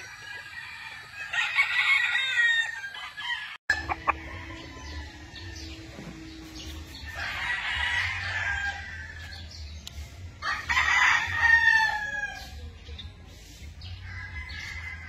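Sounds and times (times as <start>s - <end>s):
rooster crowing: 0.3s - 5.8s.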